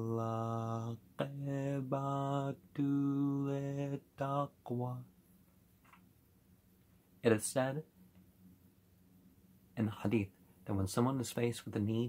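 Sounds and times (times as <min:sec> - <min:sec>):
man chanting: 0:00.0 - 0:05.1.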